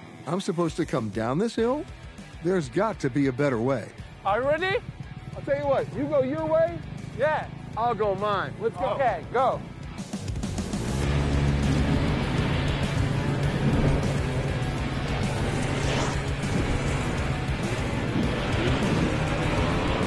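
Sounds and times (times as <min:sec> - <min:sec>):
background music: 0:00.0 - 0:20.0
snowmobile engine revving: 0:04.3 - 0:20.0.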